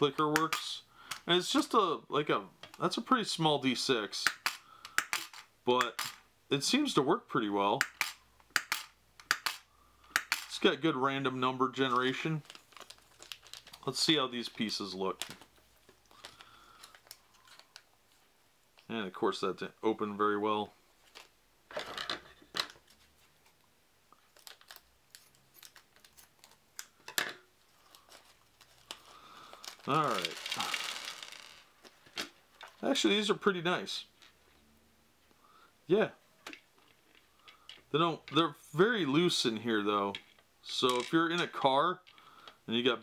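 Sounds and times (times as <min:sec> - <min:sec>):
plastic bag crinkling: 0:11.9 - 0:17.9, 0:24.2 - 0:26.6, 0:27.7 - 0:32.8.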